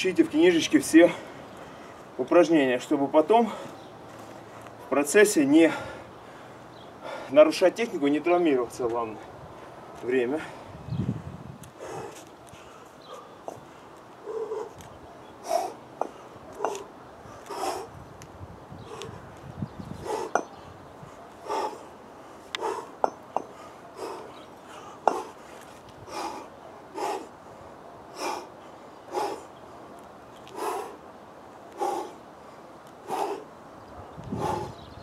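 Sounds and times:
man breathing hard: 0:05.6 - 0:07.4, 0:10.4 - 0:14.8, 0:15.4 - 0:18.0, 0:20.0 - 0:29.8, 0:30.5 - 0:31.0, 0:31.7 - 0:33.5, 0:34.2 - 0:35.0.

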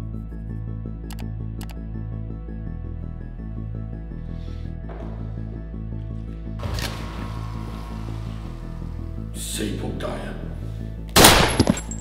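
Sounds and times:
handgun gunshot: 0:11.2 - 0:12.0.

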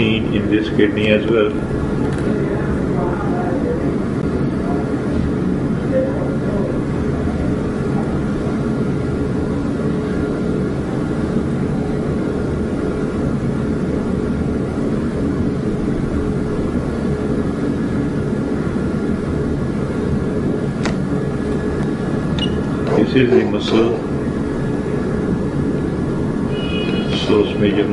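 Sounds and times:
faint constant hum: 0:00.0 - 0:27.9.

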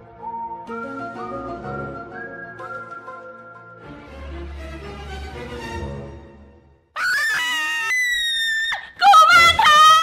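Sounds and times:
boy and woman screaming: 0:07.0 - 0:10.0.

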